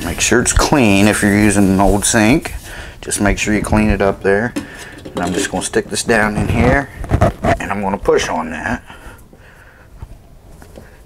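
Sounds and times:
hand handling noise: 0:03.6 - 0:07.8.

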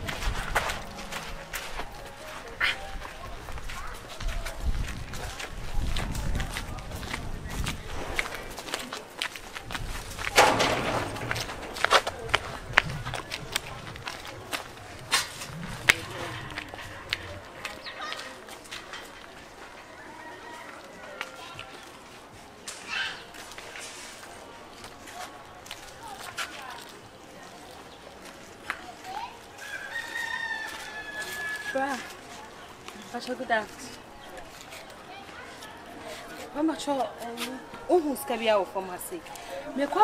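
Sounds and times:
footsteps on dirt path: 0:00.0 - 0:19.8, 0:23.3 - 0:38.2.

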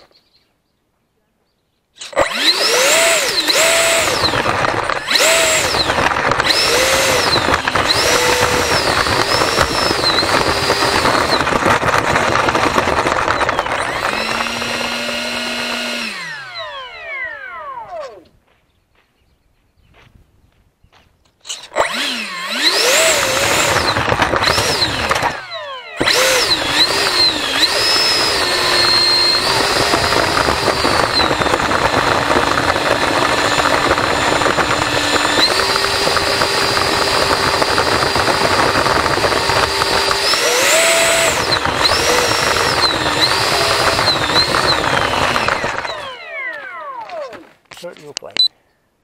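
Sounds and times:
electric motor and propeller whine: 0:02.0 - 0:18.5, 0:21.4 - 0:47.8.

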